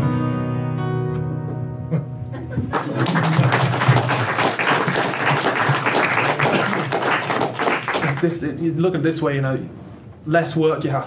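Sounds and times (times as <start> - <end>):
small audience applauding: 2.6 - 8.4.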